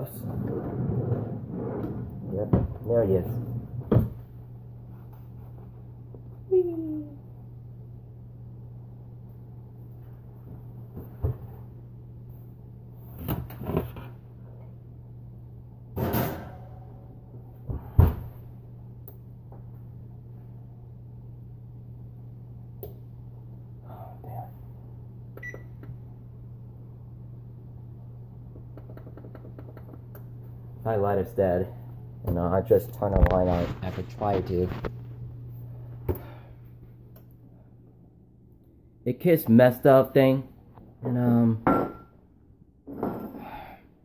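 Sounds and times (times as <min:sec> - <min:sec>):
low appliance hum: 0:00.0 - 0:44.0
oven door banging shut: 0:16.0 - 0:16.7
oven door clanging: 0:16.0 - 0:16.8.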